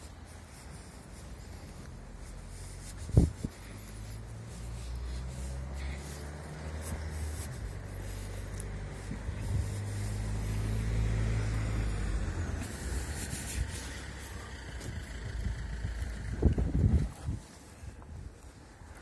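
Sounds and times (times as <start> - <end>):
motor vehicle engine hum: 0.0 - 19.0.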